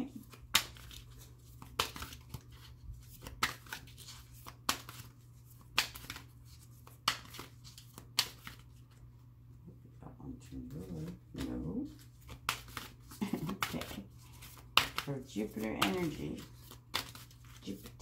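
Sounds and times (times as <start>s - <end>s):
cards being shuffled: 0.0s - 9.1s, 10.6s - 18.0s
sharp card snaps: 0.2s - 1.0s, 3.2s - 8.7s, 12.2s - 17.9s.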